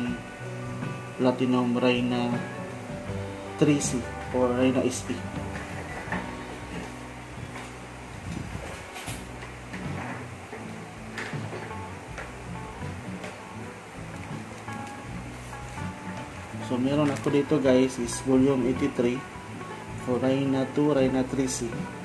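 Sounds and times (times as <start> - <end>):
pop karaoke backing music: 0.0 - 22.0.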